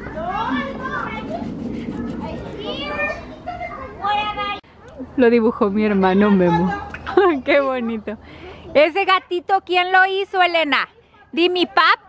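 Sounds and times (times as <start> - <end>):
children chattering and calling: 0.0 - 5.2, 5.8 - 12.0.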